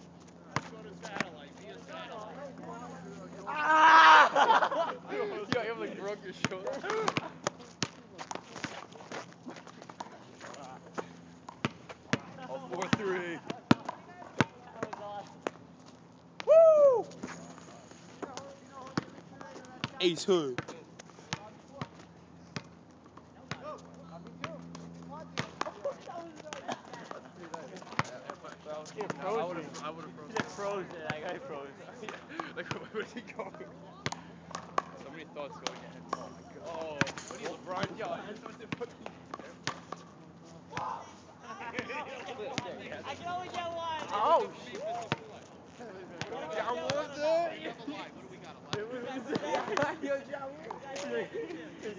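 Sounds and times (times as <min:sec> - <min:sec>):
players' voices: 0:00.4 - 0:11.4, 0:12.0 - 0:15.4, 0:16.4 - 0:22.4, 0:23.3 - 0:51.9
basketball bouncing on asphalt: 0:06.4 - 0:08.8, 0:09.6 - 0:15.6, 0:18.2 - 0:29.2, 0:34.0 - 0:35.0.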